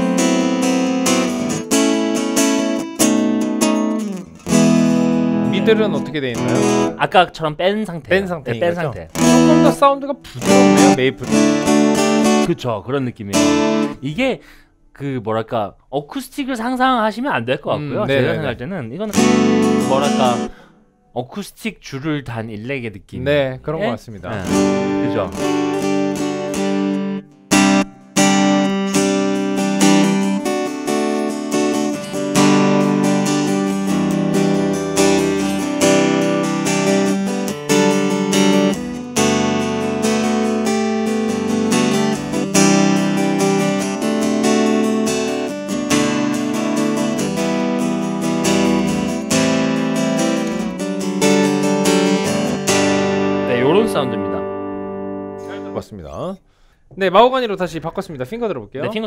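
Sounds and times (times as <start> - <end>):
amplified guitar strummed chords: 0.0 - 7.0, 9.1 - 12.5, 13.3 - 14.0, 17.8 - 20.6, 24.3 - 55.8.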